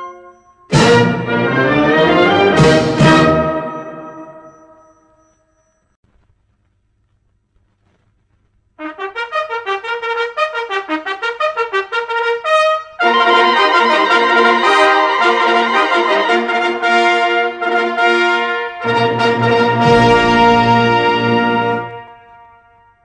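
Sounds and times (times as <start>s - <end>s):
wind band playing: 0.7s - 4.1s, 8.8s - 22.9s.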